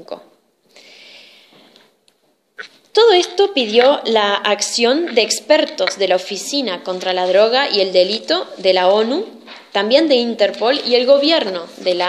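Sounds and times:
woman breathing in: 0.7s - 1.8s.

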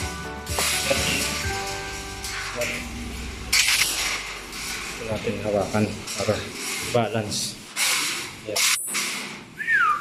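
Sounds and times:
metal bed frame scraping: 0.4s - 9.6s.

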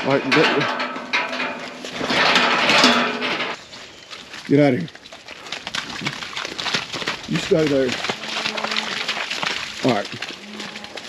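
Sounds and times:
footsteps squelching in mud: 3.5s - 11.0s.

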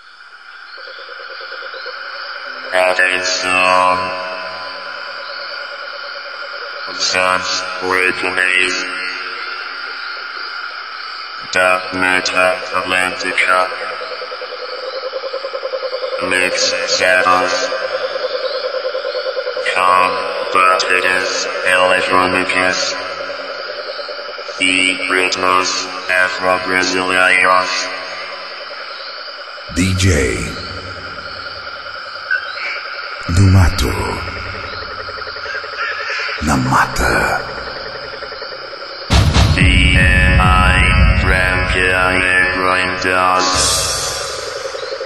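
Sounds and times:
insects and frogs chorus: 0.0s - 45.0s
steady hiss: 19.9s - 45.0s.

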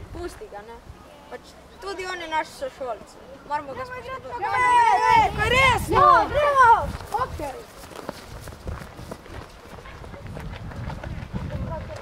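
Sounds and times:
children running on grass: 4.2s - 12.0s.

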